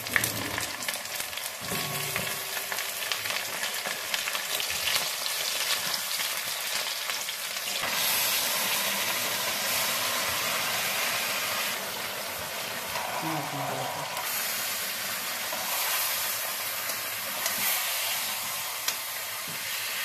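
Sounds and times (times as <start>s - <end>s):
food frying in hot oil: 0.0s - 20.0s.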